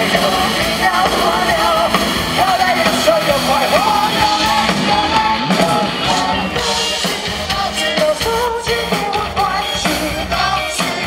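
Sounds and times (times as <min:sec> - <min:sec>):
amplified electric guitar: 0:00.0 - 0:11.0
drums: 0:00.0 - 0:11.0
male vocalist singing: 0:00.0 - 0:11.0.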